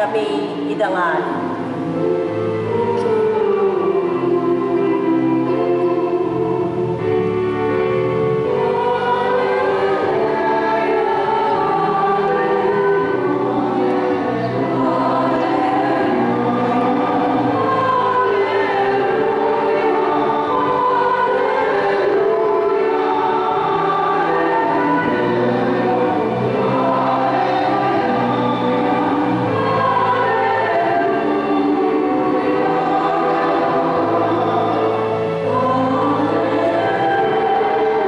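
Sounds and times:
choir singing a hymn: 0.0 - 38.0.

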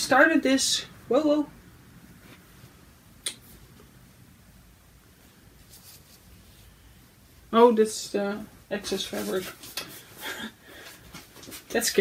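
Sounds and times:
fabric rustling: 5.1 - 7.0, 8.8 - 12.0.

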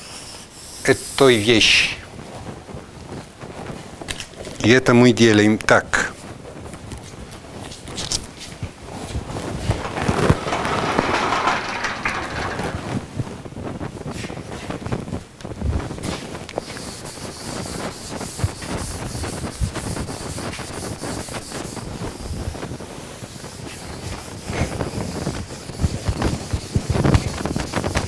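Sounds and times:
scraping: 9.0 - 13.2
knocks: 9.8 - 13.1.

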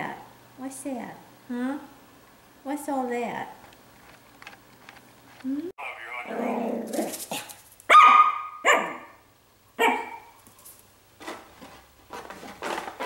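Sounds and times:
puppy yapping: 6.3 - 9.2, 9.8 - 10.4.

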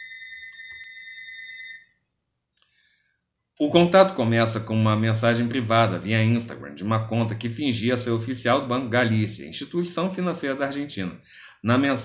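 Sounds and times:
high-pitched electronic tone: 0.0 - 1.8.

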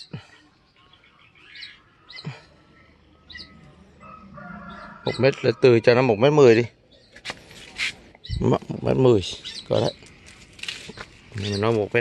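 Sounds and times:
high bird chirps: 0.0 - 5.6, 6.9 - 10.1
faint outdoor background: 0.0 - 12.0.

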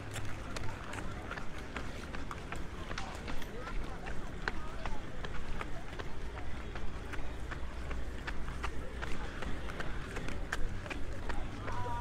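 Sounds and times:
people chatting: 0.0 - 12.0.

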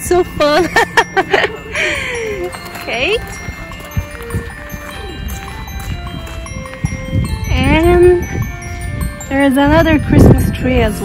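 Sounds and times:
chimes ringing: 0.0 - 11.0.

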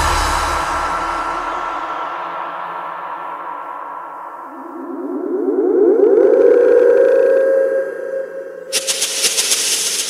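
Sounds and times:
droning siren-like synthesizer: 4.3 - 9.0.

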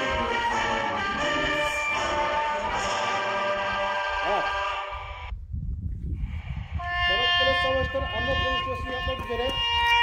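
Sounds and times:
wind buffeting microphone: 0.0 - 1.8, 3.6 - 10.0
music: 0.0 - 4.9.

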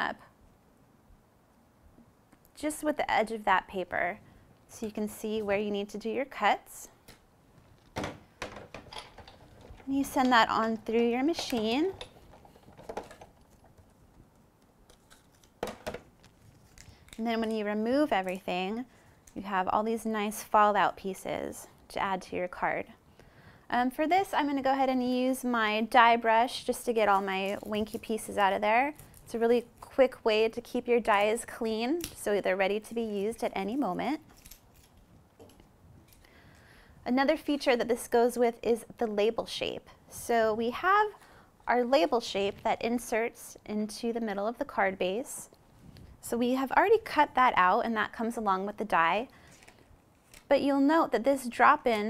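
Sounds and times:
woman speaking: 0.0 - 0.3, 2.6 - 7.0, 9.8 - 12.0, 17.2 - 23.0, 23.7 - 34.3, 37.0 - 45.5, 46.2 - 49.3, 50.5 - 52.0.

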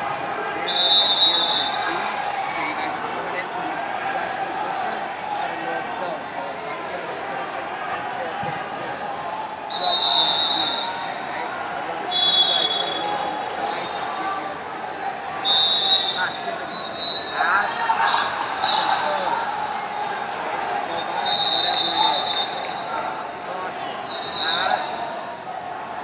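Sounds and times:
echoing crowd chatter: 0.0 - 26.0
referee whistle blasts: 0.7 - 2.0, 9.7 - 11.1, 12.1 - 14.2, 15.4 - 19.0, 20.9 - 22.9, 24.1 - 25.0.

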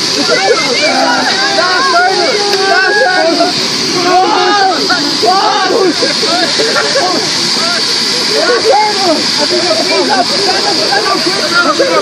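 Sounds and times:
people laughing and calling out: 0.0 - 12.0
steady high hiss: 0.0 - 12.0.

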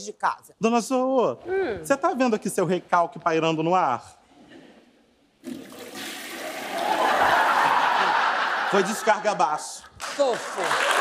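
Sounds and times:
toilet flushing: 5.4 - 7.9
audience laughter: 6.7 - 9.4.

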